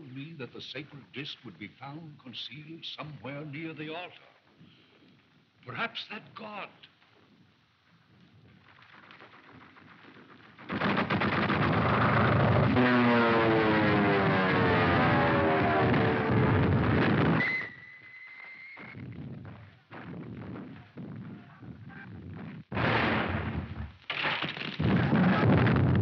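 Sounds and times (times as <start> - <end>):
scattered bangs: 8.7 - 17.7, 22.7 - 26.0
machine-gun fire: 8.8 - 13.5, 22.7 - 26.0.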